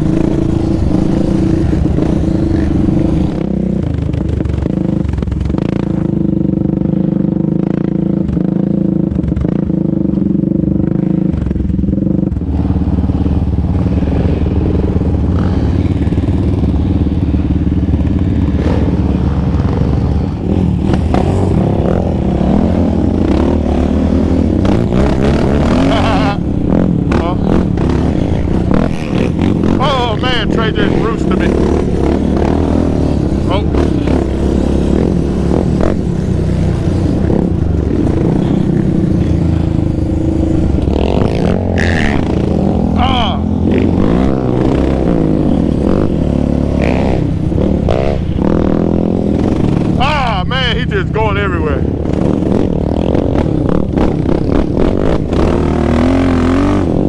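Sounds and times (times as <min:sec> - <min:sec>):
atv engine running: 0:00.0 - 0:57.0.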